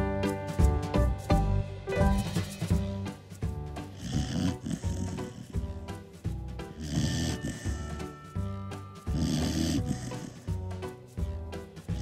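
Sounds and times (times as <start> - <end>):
background music: 0.0 - 12.0
dog snoring: 3.8 - 5.9, 6.7 - 8.2, 9.0 - 10.6.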